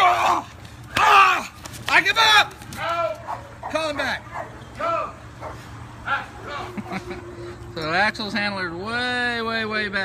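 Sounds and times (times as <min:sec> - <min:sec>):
dog barking: 0:03.2 - 0:04.6, 0:05.4 - 0:06.7.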